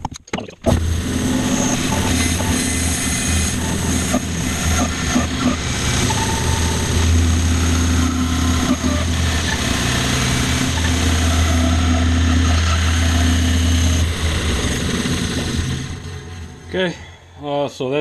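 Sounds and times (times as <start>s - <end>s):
bandsaw blade cutting wood: 0.7s - 16.3s
bandsaw motor hum: 0.7s - 16.8s.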